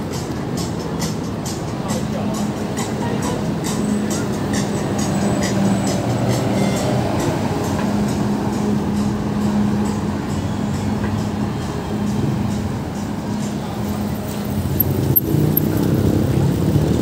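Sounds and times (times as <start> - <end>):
bus driving through: 0.0 - 17.0
cars driving through: 0.0 - 17.0.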